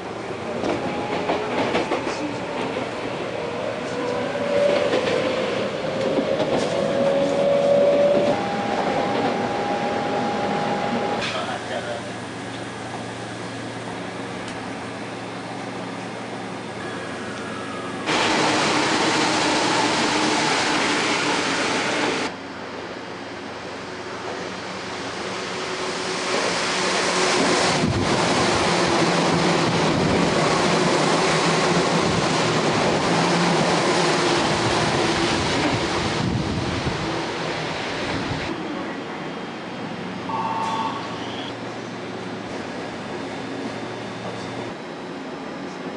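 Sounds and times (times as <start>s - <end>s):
standing train humming: 0.0s - 45.9s
train pulling in: 0.0s - 45.9s
train motor whine: 40.3s - 41.6s.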